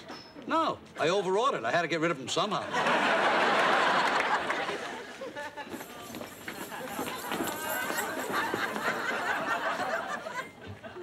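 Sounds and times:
footsteps on hard floor: 5.7s - 9.5s.

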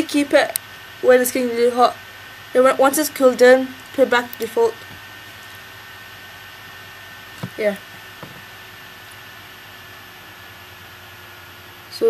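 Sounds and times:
faint high whine: 0.0s - 12.0s
laptop cooling fans rushing: 0.0s - 12.0s.

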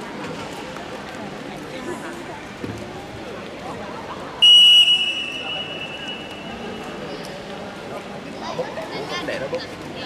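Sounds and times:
referee's whistle blast: 4.4s - 6.4s.

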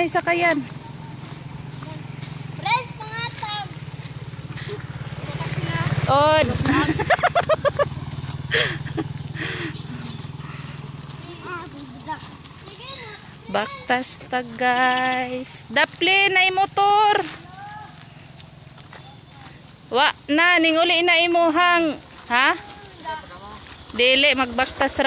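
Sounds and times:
small motorcycle engine passing: 0.0s - 25.0s.

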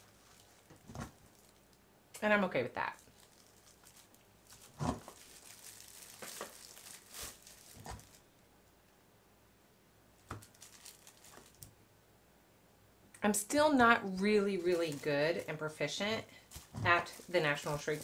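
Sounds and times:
plastic film crinkling: 0.0s - 1.8s, 2.8s - 8.3s, 10.2s - 11.7s, 14.0s - 18.0s.

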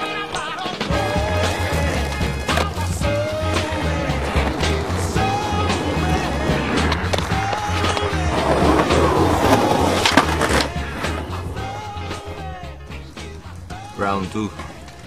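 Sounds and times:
skateboard wheels rolling on pavement: 0.0s - 15.0s
music with bass beat: 0.1s - 15.0s.

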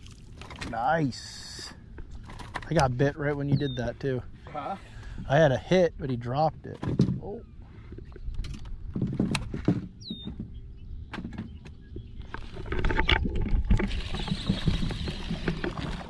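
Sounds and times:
low rush of wind and water: 0.0s - 16.0s
knocks and clicks of fishing tackle: 7.9s - 13.9s.

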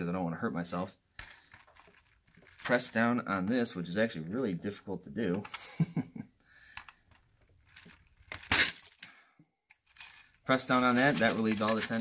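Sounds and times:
spring clatter: 1.2s - 3.6s, 9.7s - 12.0s.

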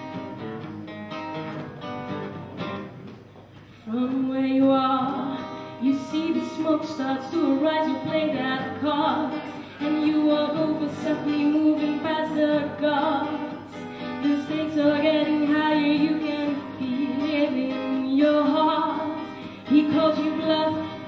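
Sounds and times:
acoustic guitar: 0.0s - 21.0s
woman singing into microphone: 3.8s - 21.0s.

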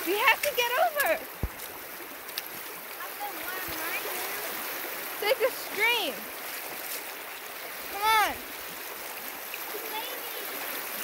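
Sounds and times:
stream flowing over stones: 0.0s - 11.0s.

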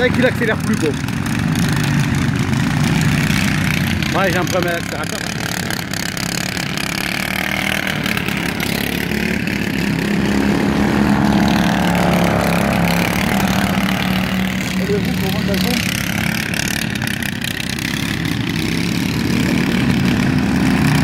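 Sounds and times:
lawn mower engine running: 0.0s - 21.0s.

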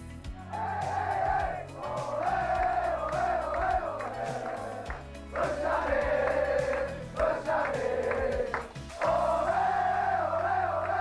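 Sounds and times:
music with steady beat: 0.0s - 11.0s
men chanting in chorus: 0.5s - 11.0s.

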